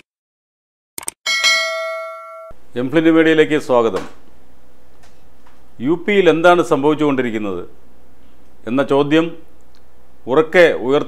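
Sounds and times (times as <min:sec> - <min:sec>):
notification bell ding: 0:01.3 - 0:02.6.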